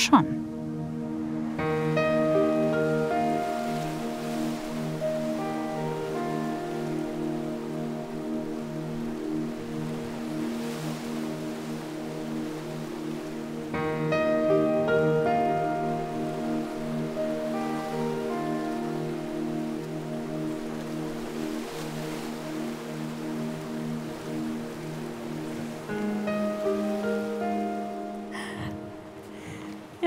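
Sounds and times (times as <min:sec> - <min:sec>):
background music with held chords: 0:00.0 - 0:30.0.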